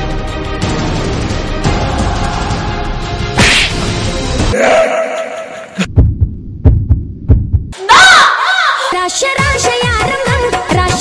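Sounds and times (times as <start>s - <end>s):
trailer music: 0.0s - 7.8s
heartbeat thumps: 5.8s - 7.8s.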